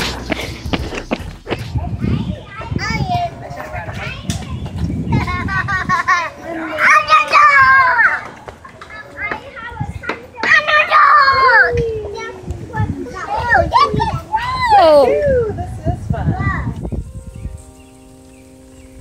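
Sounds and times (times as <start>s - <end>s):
young children squealing: 10.6s - 12.4s, 13.7s - 15.6s.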